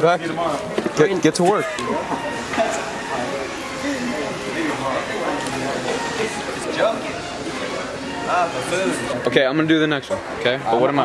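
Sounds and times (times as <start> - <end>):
indistinct voices talking: 0.0 - 11.0
store background hubbub: 0.0 - 11.0.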